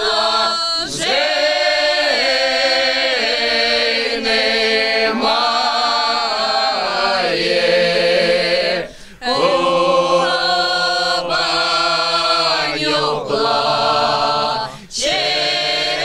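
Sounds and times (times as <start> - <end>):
folk choir singing a cappella: 0.0 - 16.0.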